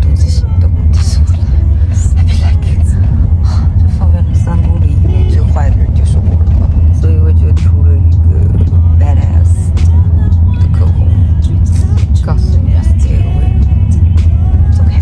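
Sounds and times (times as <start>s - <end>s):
car rumble from inside cabin: 0.0s - 15.0s.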